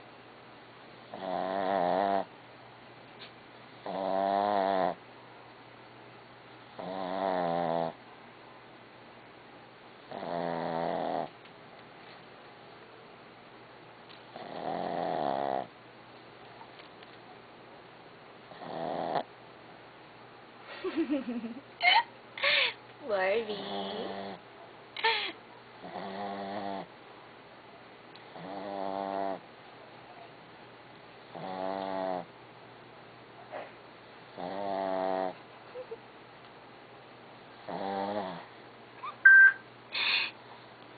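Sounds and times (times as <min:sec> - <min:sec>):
dog snoring: 0:01.1 - 0:02.3, 0:03.8 - 0:05.0, 0:06.7 - 0:08.0, 0:10.1 - 0:11.4, 0:14.3 - 0:15.7, 0:18.5 - 0:19.3, 0:23.5 - 0:24.4, 0:25.8 - 0:26.9, 0:28.3 - 0:29.4, 0:31.3 - 0:32.3, 0:34.3 - 0:35.4, 0:37.6 - 0:38.5
person laughing: 0:20.7 - 0:22.8, 0:25.0 - 0:25.4, 0:35.7 - 0:36.0.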